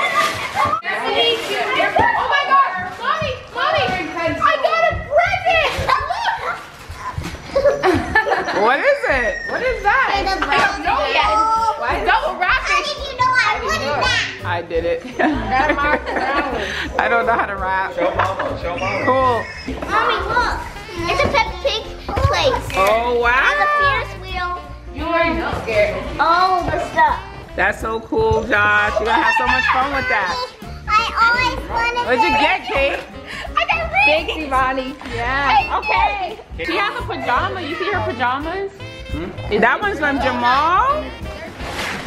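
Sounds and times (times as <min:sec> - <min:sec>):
children shrieking and talking: 0:00.0 - 0:12.0, 0:18.7 - 0:21.3
children talking and exclaiming: 0:00.0 - 0:42.0
music playing: 0:01.5 - 0:42.0.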